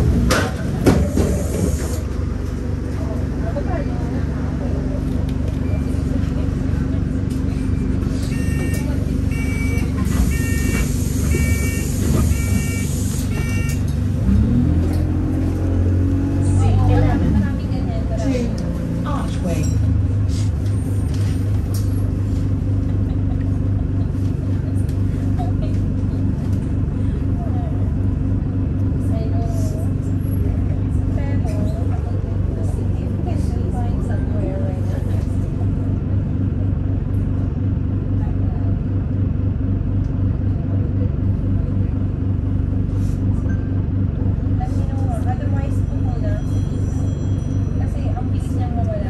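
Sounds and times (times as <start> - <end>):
bus engine drone: 0.0 - 49.0
road noise: 0.0 - 49.0
short beeps: 8.2 - 13.8.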